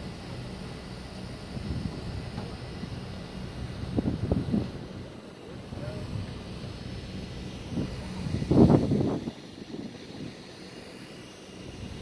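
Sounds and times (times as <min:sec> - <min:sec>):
boat engine droning: 0:00.0 - 0:12.0.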